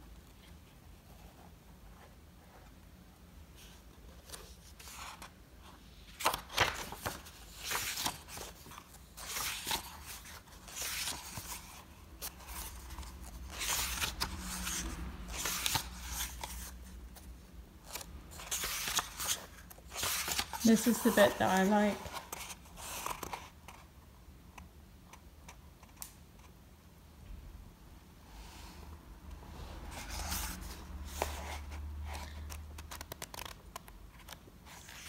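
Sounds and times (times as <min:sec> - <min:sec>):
notebook pages turning: 0:03.6 - 0:05.3, 0:06.0 - 0:23.8, 0:29.9 - 0:35.0.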